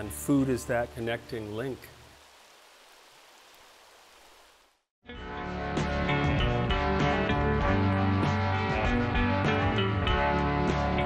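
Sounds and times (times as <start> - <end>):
faint steady hiss: 0.0 - 4.9.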